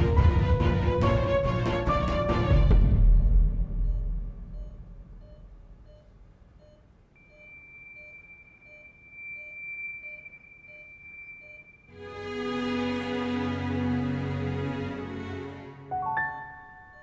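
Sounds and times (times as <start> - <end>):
dramatic music: 0.0 - 5.0
patient monitor beeping: 3.1 - 12.0, 16.0 - 17.0.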